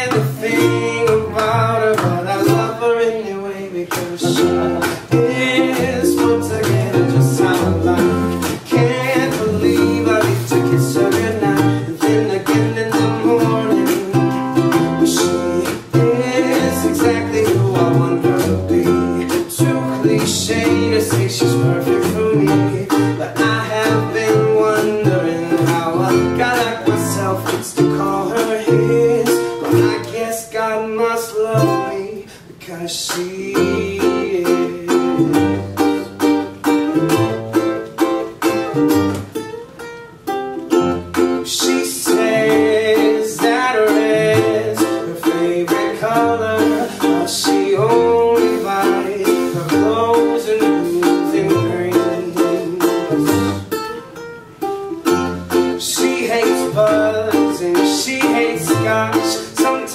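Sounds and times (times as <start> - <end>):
upright bass line: 0.0 - 30.2, 31.5 - 32.0, 33.5 - 39.5, 40.6 - 53.8, 55.0 - 59.9
ukulele strumming: 0.0 - 59.9.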